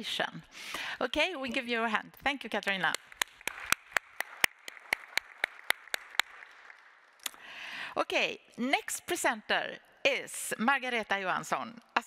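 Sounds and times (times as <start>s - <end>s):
person clapping close: 2.6s - 7.4s
audience clapping softly: 2.7s - 7.6s.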